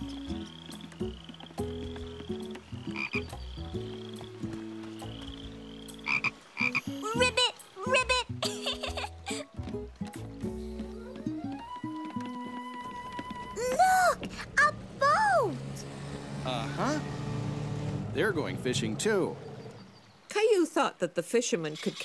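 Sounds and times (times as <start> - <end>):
low held notes: 15.6 - 20.1.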